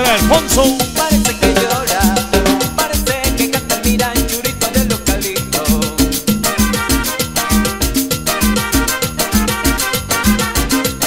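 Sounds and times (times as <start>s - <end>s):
live cumbia band playing: 0.0s - 11.0s.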